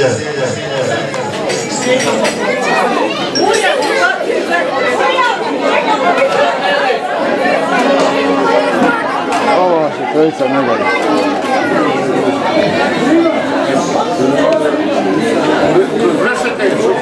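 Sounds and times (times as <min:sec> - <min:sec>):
crowd chattering in a hall: 0:00.0 - 0:17.0.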